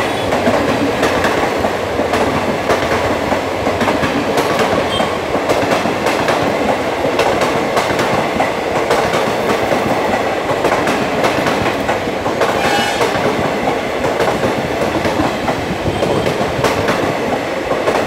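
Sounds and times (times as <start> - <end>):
train wheels rushing on rail: 0.0 - 18.0.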